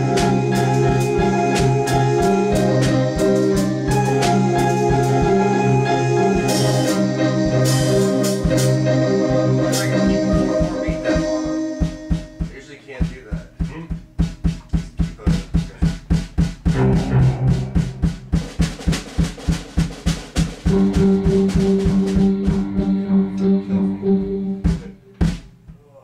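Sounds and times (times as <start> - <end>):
organ chords: 0.0 - 12.8, 16.7 - 18.8, 20.4 - 25.5
drum kit beating: 0.0 - 26.0.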